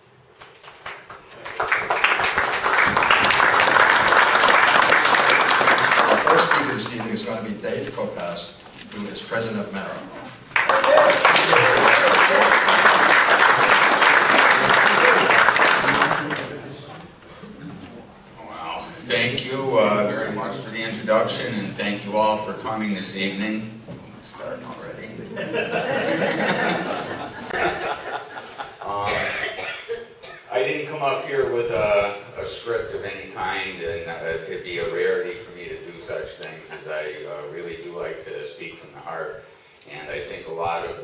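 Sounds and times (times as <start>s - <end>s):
voices in room: 0.0s - 41.0s
applause: 0.4s - 7.1s, 10.5s - 16.6s
person coughing: 28.9s - 30.5s.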